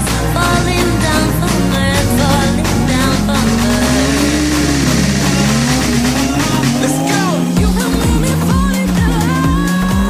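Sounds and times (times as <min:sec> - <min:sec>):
background music with beat: 0:00.0 - 0:10.0
car engine revving: 0:00.0 - 0:10.0.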